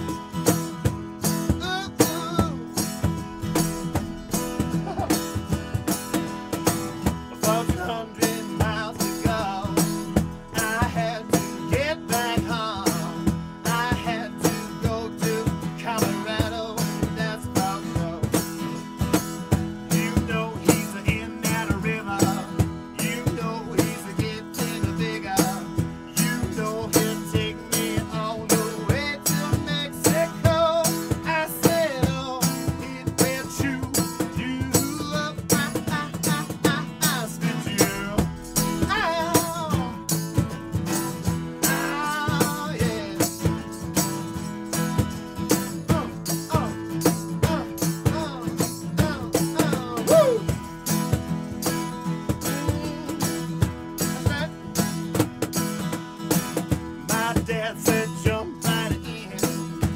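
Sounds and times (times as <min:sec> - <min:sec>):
man singing: 0:00.0 - 0:55.0, 0:56.9 - 0:59.9
acoustic guitars strummed: 0:00.0 - 0:59.9
cajon beat: 0:00.0 - 0:59.9.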